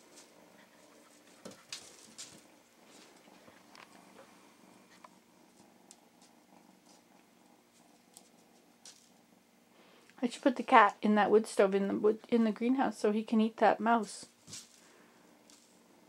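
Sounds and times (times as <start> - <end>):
faint low hum: 0.0 - 16.0
kitten paws tapping on wood: 0.9 - 3.7.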